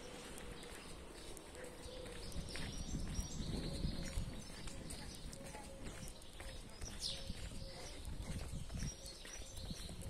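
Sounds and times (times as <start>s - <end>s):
footsteps on paved street: 0.0s - 10.0s.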